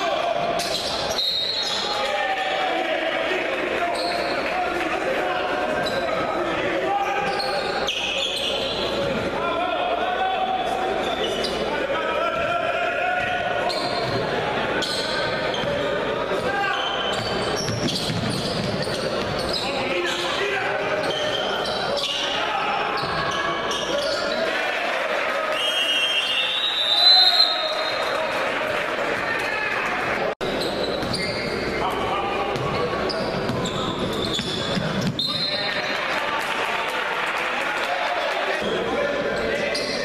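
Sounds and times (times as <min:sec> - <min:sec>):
voices of players and crowd: 0:00.0 - 0:40.0
shoe squeaks: 0:00.6 - 0:02.0, 0:07.1 - 0:09.0, 0:11.0 - 0:11.7, 0:13.6 - 0:14.2, 0:14.8 - 0:15.8, 0:16.6 - 0:24.4, 0:30.4 - 0:31.8, 0:32.5 - 0:35.7, 0:39.4 - 0:40.0.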